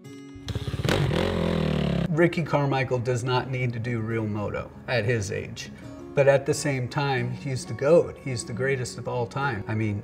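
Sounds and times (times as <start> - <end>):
background music: 0.0 - 10.0
dirt bike engine revving: 0.4 - 2.1.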